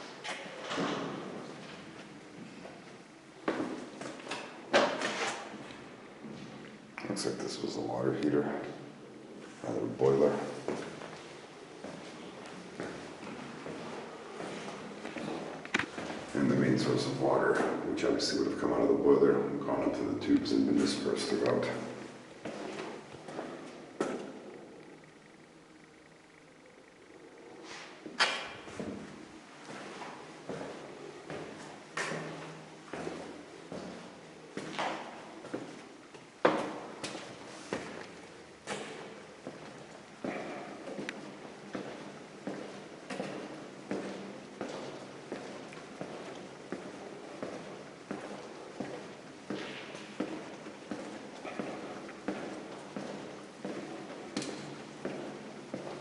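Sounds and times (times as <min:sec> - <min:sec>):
scuffs on concrete: 0:10.6 - 0:16.4, 0:22.4 - 0:24.4, 0:29.6 - 0:56.0.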